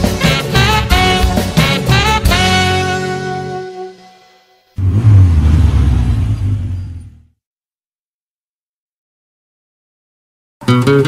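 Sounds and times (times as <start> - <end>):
loud rough rumble: 4.8 - 7.3.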